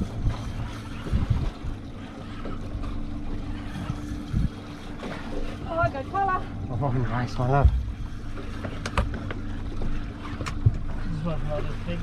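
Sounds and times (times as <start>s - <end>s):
wind buffeting microphone: 0.0s - 1.9s, 3.6s - 4.9s
boat engine idling: 0.0s - 12.0s.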